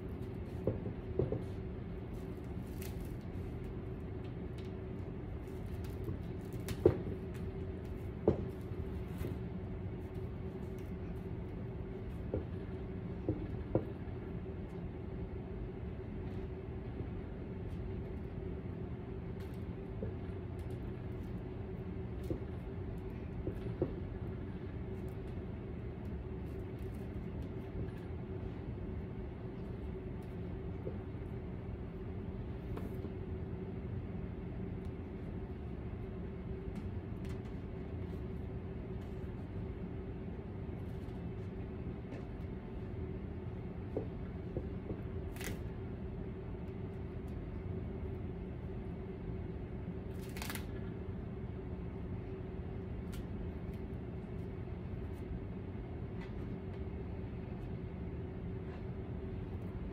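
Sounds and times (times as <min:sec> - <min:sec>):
steady low hum: 0:00.0 - 0:59.9
faint taps and crinkles of tape: 0:00.1 - 0:14.1, 0:19.3 - 0:25.4, 0:32.6 - 0:33.2, 0:36.6 - 0:39.4.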